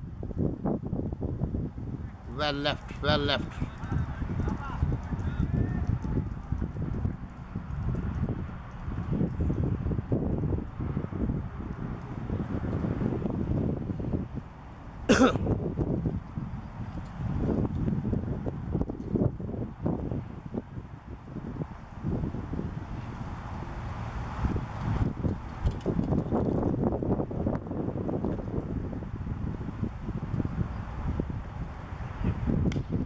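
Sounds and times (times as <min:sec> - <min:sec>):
distant voices: 0:02.0 - 0:10.0.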